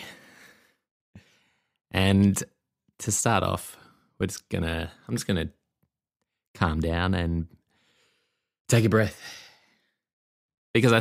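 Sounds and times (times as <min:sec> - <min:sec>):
soft in-breath: 0:00.0 - 0:01.8, 0:07.7 - 0:08.6
man speaking: 0:01.9 - 0:05.6, 0:06.6 - 0:07.5, 0:08.7 - 0:09.5, 0:10.8 - 0:11.0.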